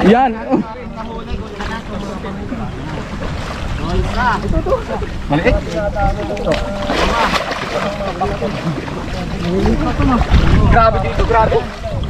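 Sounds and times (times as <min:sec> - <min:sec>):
wind buffeting microphone: 0:00.0 - 0:12.0
muddy water sloshing: 0:00.8 - 0:12.0.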